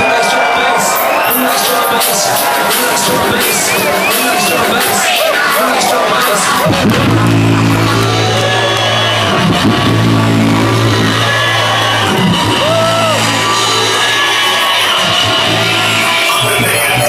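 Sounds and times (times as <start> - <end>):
buzzy low bass note: 6.7 - 13.9.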